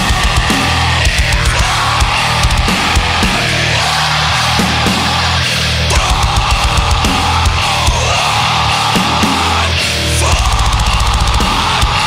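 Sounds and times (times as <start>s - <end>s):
distorted guitars and bass: 0.0s - 12.0s
drums: 0.0s - 12.0s.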